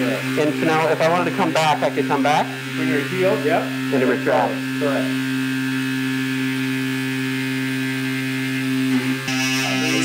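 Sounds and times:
bone-cutting tool humming: 0.0s - 10.0s.

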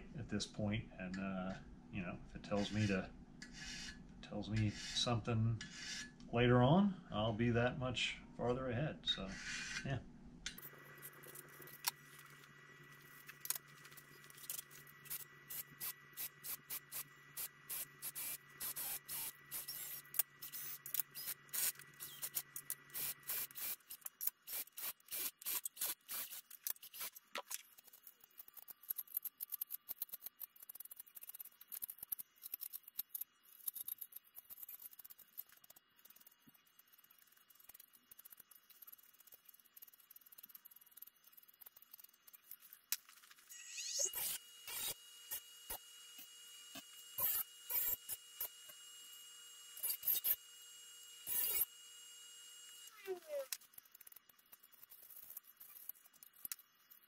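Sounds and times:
hand tools clicking and scraping metal: 10.5s - 48.8s, 49.8s - 50.4s, 51.2s - 51.7s, 52.8s - 57.0s.

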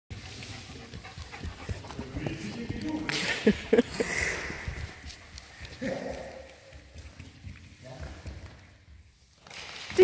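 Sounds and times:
dog panting: 0.1s - 6.9s.

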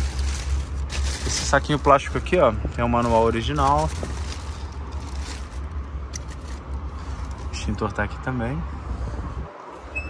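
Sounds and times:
plastic bag crinkling: 0.0s - 7.6s.

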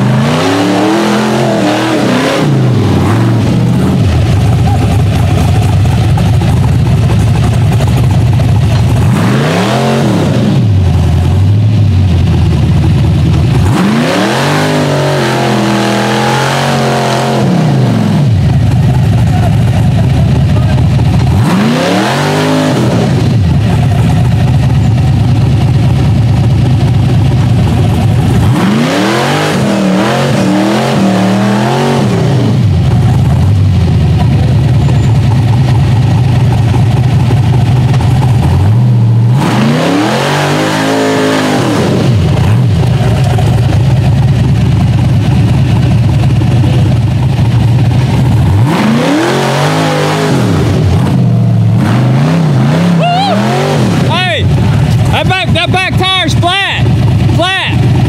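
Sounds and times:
buggy engine at high revs: 0.0s - 58.0s.

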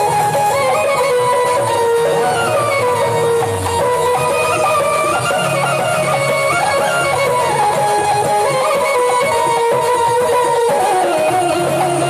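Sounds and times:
plucked string melody: 0.0s - 12.0s.

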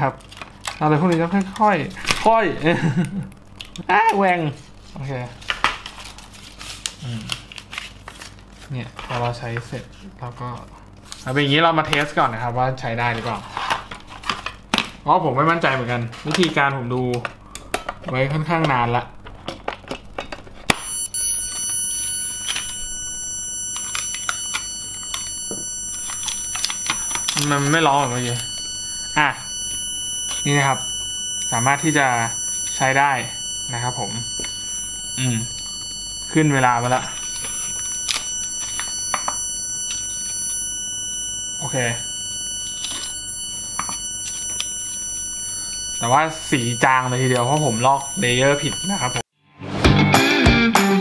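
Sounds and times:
high-pitched whine: 20.7s - 49.3s
high-pitched electronic tone: 20.8s - 49.2s.

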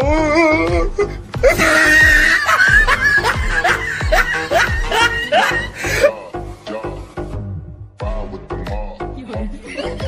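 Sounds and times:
music with steady beat: 0.0s - 10.0s
laughter: 1.5s - 6.1s.

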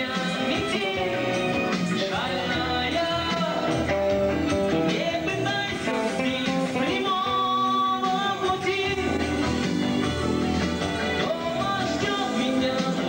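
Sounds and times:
man singing into a microphone: 0.0s - 10.1s, 11.0s - 13.0s
loud electric guitar: 0.0s - 13.0s.

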